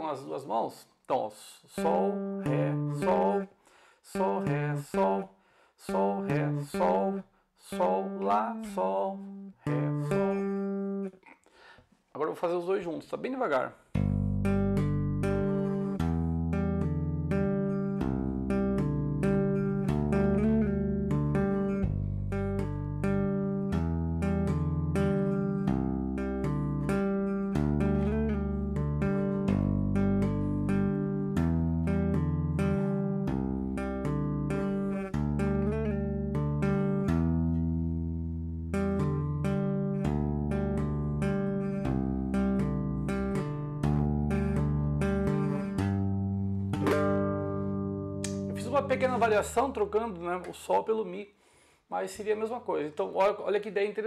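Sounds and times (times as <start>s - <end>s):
electric bass tapping: 2.1s - 3.4s, 8.0s - 11.1s, 13.9s - 50.6s.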